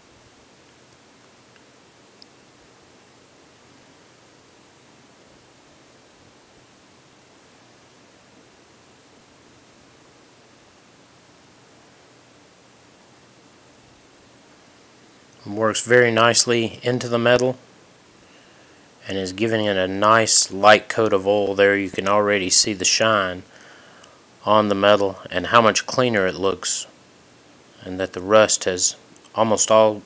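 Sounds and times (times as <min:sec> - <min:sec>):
faint steady hiss: 0:00.0 - 0:30.0.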